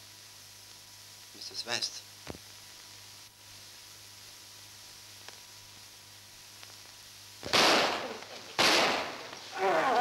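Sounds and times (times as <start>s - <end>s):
loud blasts: 7.4s - 9.3s.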